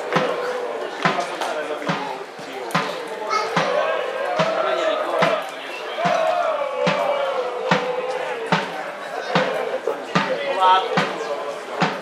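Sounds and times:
football supporters chanting: 3.4s - 11.2s.

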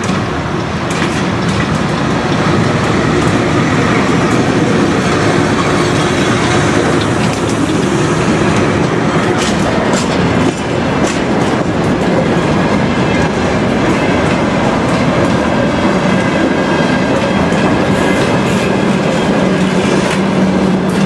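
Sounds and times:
steel wheels rolling on rails: 0.0s - 21.0s
wheels clicking over rail joints: 0.0s - 21.0s.

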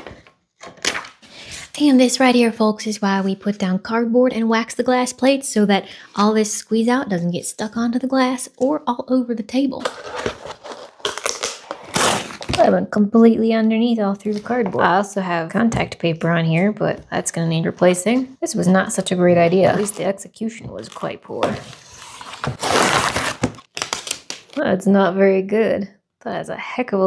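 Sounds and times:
cardboard crackling and tearing: 9.8s - 12.7s, 21.5s - 24.6s
paper crackling: 21.7s - 24.6s.

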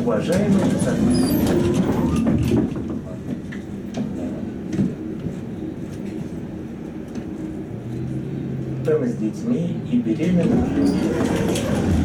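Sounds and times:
tram interior low rumble: 0.0s - 12.0s.

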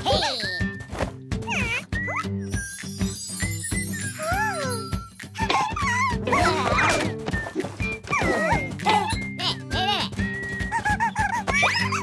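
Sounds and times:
cartoon soundtrack music: 0.0s - 12.0s
baby squeals and cries: 1.5s - 2.5s, 3.9s - 7.1s, 10.7s - 12.0s.

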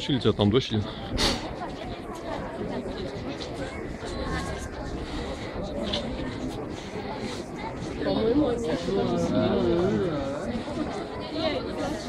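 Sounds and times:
indistinct crowd chatter: 0.0s - 12.0s.

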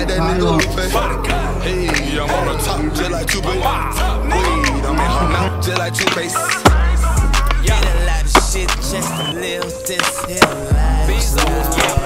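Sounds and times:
hip-hop track with heavy bass: 0.0s - 12.0s
skateboard wheels rolling on concrete: 0.0s - 12.0s.

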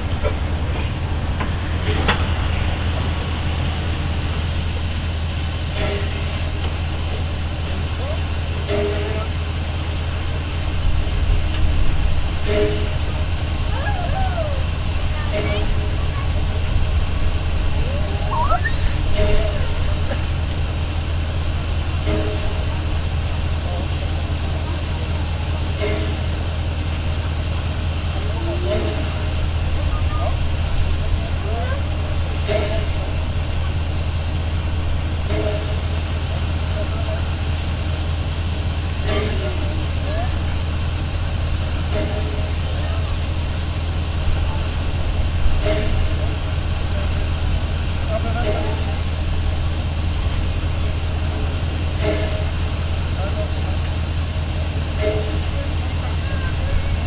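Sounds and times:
steam locomotive hum and hiss: 0.0s - 57.0s
short repeating tone: 18.3s - 18.9s.

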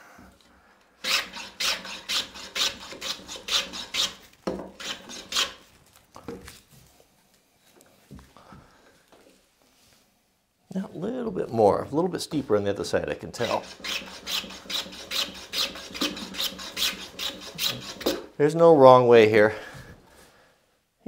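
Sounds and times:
hand plane cutting wood: 1.0s - 5.6s, 13.4s - 18.3s.

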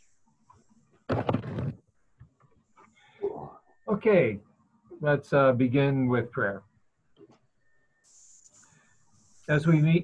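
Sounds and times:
faint small sounds: 0.0s - 5.0s, 6.6s - 10.0s.

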